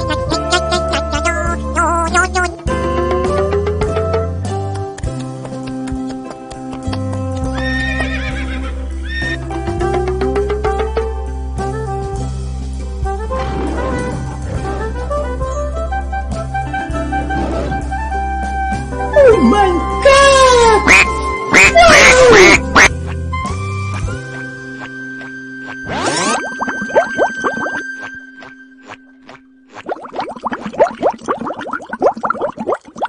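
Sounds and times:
duck quacking: 0.0s - 2.6s, 20.6s - 22.9s
background music: 0.0s - 33.0s
horse whinnying: 7.6s - 9.4s.

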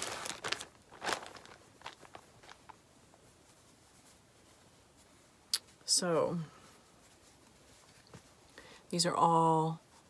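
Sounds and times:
fabric rustling: 0.0s - 10.0s.

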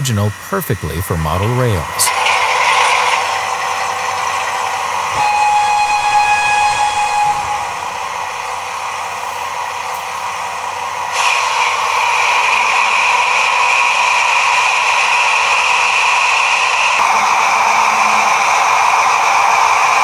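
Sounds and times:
steady hissing running sound: 0.0s - 20.0s
multi-tone locomotive horn: 5.1s - 8.2s, 17.0s - 19.7s.

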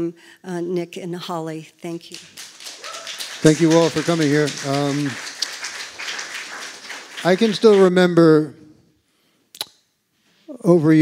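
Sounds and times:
audience applause: 2.1s - 8.2s.

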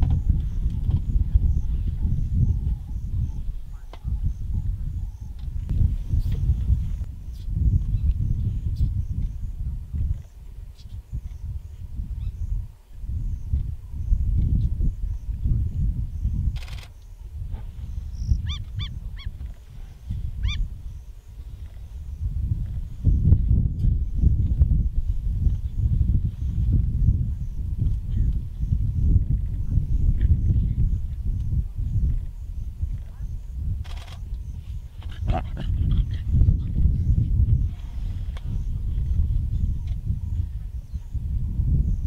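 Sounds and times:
steady low rumble: 0.0s - 42.0s
bird calling: 18.2s - 19.3s
lion cub growling: 35.0s - 36.4s.

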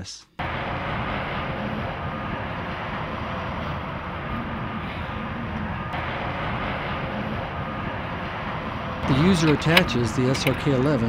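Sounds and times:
truck engine running: 0.4s - 11.0s.

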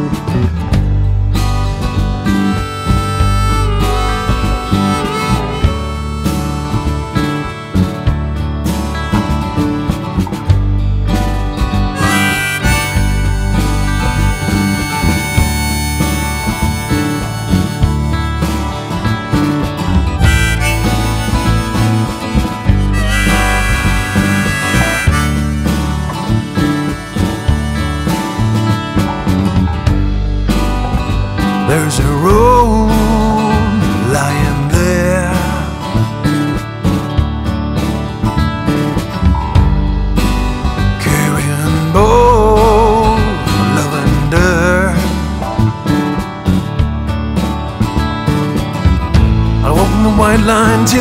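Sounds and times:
bass line: 0.0s - 51.0s
guitar: 0.0s - 51.0s
harmonica bent notes: 1.6s - 9.2s, 11.7s - 37.1s.

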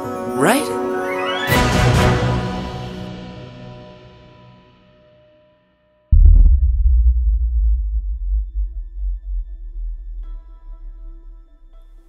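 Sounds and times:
faint pulsing tone: 6.1s - 12.0s
sub-bass boom: 6.1s - 12.0s.

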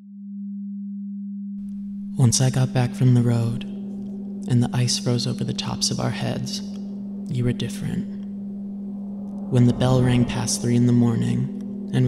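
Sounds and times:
low synthesizer drone: 1.6s - 12.0s.

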